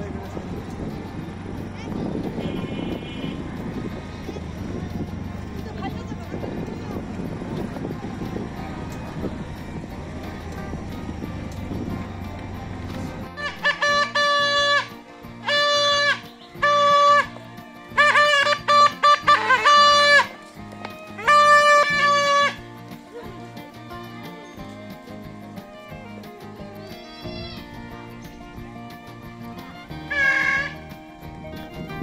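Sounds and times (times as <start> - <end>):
auto-rickshaw rumbling on dirt road: 0.0 - 26.7
toy trumpet blasts: 2.4 - 3.5, 13.4 - 20.3, 21.2 - 22.6, 30.1 - 30.8.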